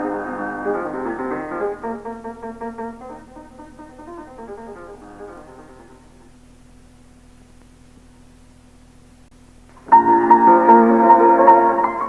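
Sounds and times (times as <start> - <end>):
piano music: 0.0 - 6.2, 9.8 - 12.0
faint steady hum: 0.0 - 12.0.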